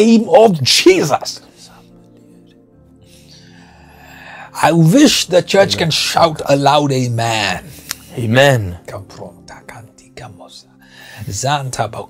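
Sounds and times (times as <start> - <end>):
quiet music with held notes: 0.0 - 12.0.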